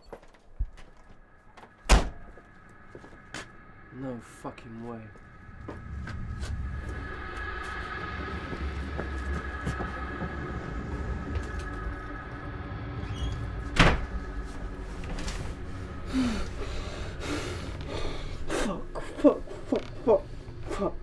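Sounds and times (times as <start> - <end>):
low rumble: 0.5 - 21.0
faint high drone: 1.0 - 21.0.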